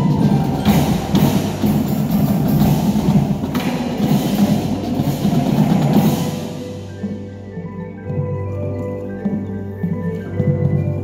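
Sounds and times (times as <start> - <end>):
drum line playing: 0.0 - 8.6.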